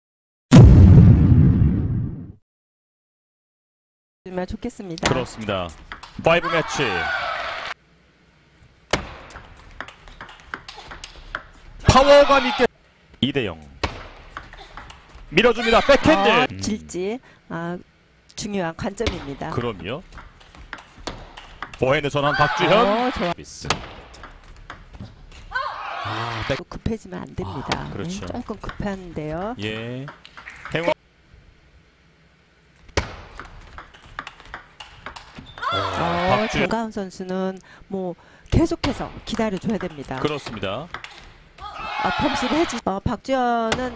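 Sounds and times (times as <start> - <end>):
commentator speaking: 15.4 - 17.2, 21.8 - 23.8, 26.4 - 28.5, 35.8 - 36.8
table tennis ball clicking: 33.4 - 35.3.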